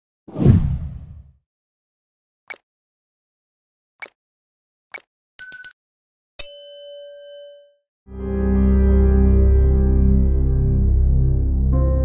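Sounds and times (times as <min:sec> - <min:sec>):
whoosh with deep low rumble: 0:00.3 - 0:01.3.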